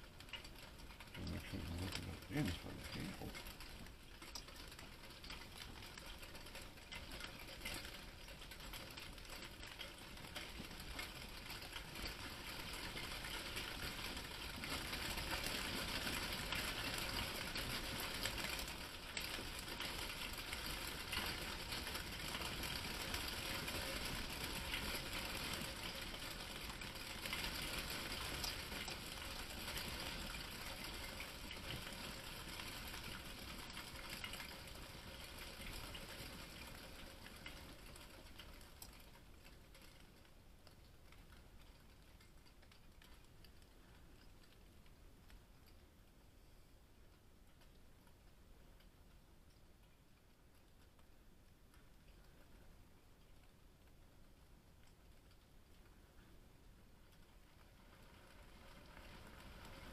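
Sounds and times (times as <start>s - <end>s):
hail and heavy rain pattering: 0.0s - 46.2s, 47.5s - 59.9s.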